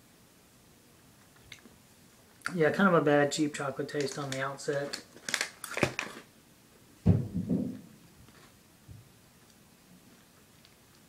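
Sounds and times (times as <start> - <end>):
plastic wrapper crinkling: 3.5 - 6.3.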